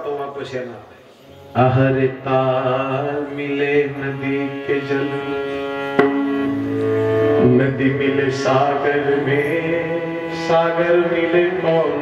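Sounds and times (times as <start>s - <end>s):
man singing devotional song: 1.5s - 5.8s, 7.4s - 12.0s.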